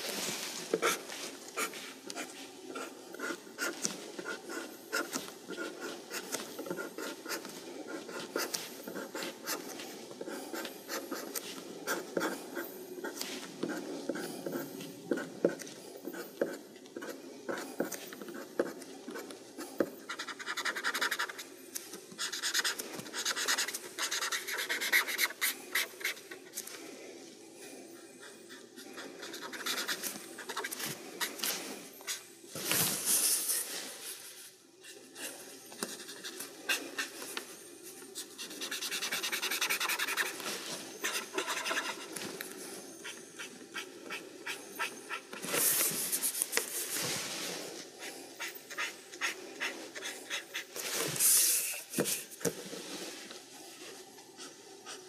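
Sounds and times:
pencil scratching on paper: 0:00.7 - 0:21.5, 0:22.2 - 0:26.5, 0:28.0 - 0:31.5, 0:34.8 - 0:37.4, 0:38.0 - 0:40.4, 0:41.0 - 0:42.2, 0:47.9 - 0:51.4.

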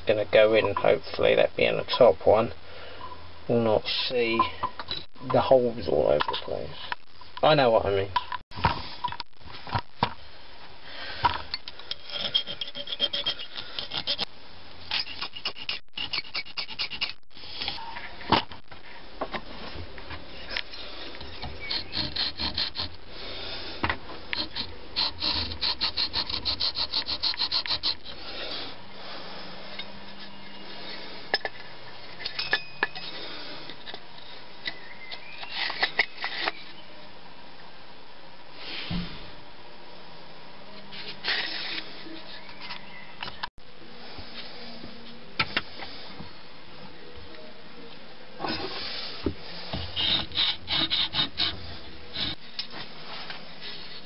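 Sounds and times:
file rasping on metal: 0:11.9 - 0:14.3, 0:14.9 - 0:17.2, 0:21.6 - 0:23.0, 0:24.4 - 0:28.2, 0:50.0 - 0:51.6.

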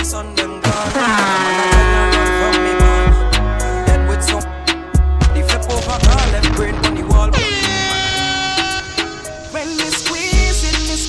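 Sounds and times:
dancehall music: 0:00.0 - 0:11.0
air horn sound effect: 0:01.0 - 0:09.8.

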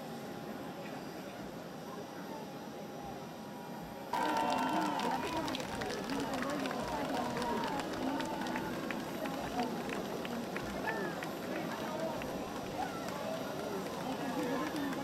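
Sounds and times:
excited voices calling out: 0:04.2 - 0:15.0.

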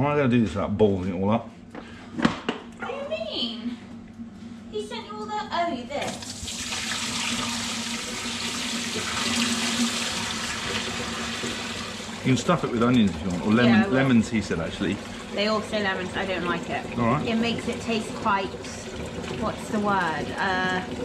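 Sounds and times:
water running into metal sink: 0:06.0 - 0:21.0.

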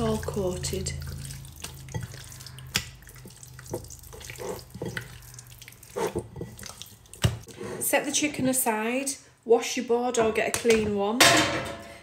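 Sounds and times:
hands kneading raw chicken: 0:00.0 - 0:07.5.

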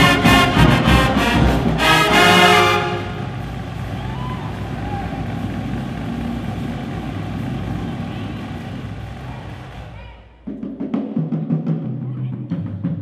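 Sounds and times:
crowd murmur echoing: 0:01.8 - 0:10.5.

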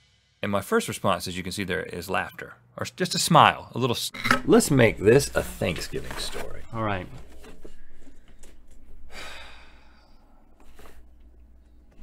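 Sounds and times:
person sighing: 0:09.1 - 0:10.2
short breath: 0:09.1 - 0:11.0.

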